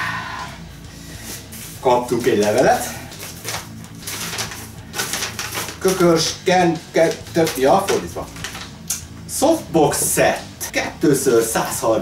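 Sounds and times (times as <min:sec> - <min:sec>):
paper crinkling: 0:02.1 - 0:06.4, 0:07.0 - 0:08.9.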